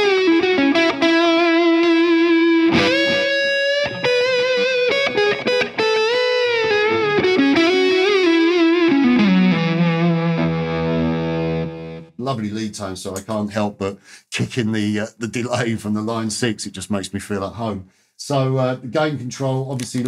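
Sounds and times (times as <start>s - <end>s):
overdriven electric guitar lead: 0.0s - 12.1s.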